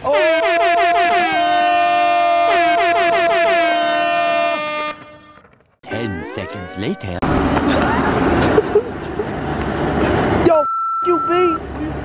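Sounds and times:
air horn blaring: 2.5s - 5.4s.

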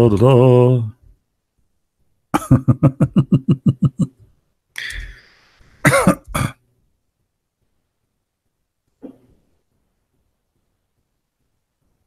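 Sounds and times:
man laughing: 2.4s - 4.2s
man coughing: 5.8s - 6.6s.

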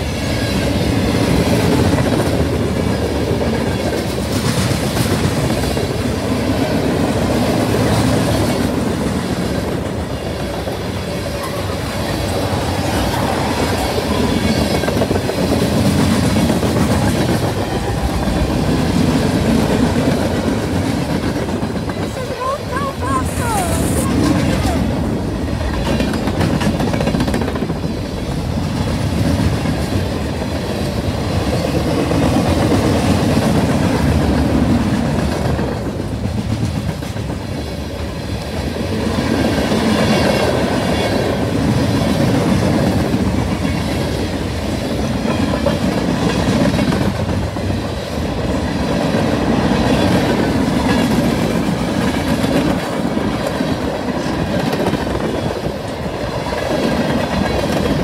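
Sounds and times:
freight train wheels clacking: 0.0s - 58.0s.

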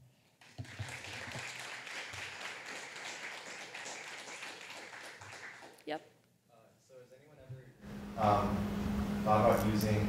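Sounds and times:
audience applauding: 0.4s - 5.9s.

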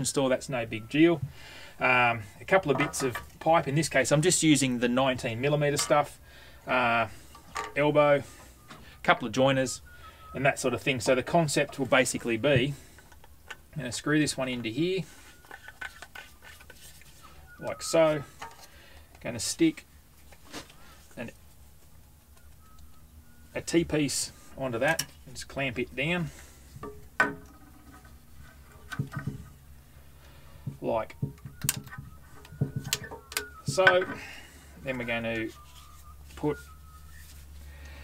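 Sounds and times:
plastic pipe knocking: 26.8s - 27.6s, 28.9s - 29.5s, 30.7s - 34.0s.

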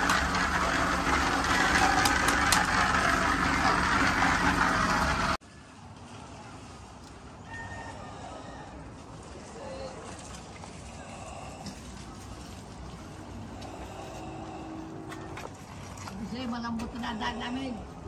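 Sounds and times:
outdoor background noise: 0.0s - 18.0s.

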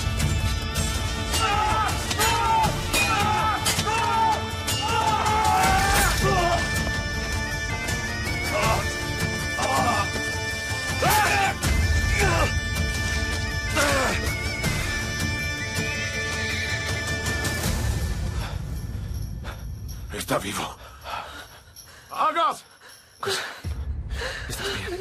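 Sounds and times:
dramatic music: 0.0s - 21.8s
men shouting and grunting: 1.3s - 7.2s, 8.3s - 12.7s, 13.7s - 14.4s.

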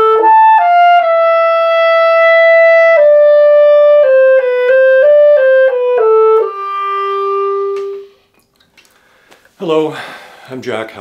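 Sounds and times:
clarinet sustained note: 0.0s - 8.3s.

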